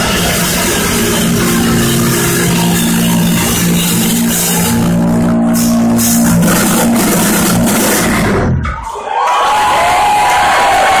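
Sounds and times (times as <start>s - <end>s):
crowd cheering and whistling: 0.0s - 6.1s, 8.8s - 11.0s
distorted guitar and bass chord: 0.0s - 8.8s.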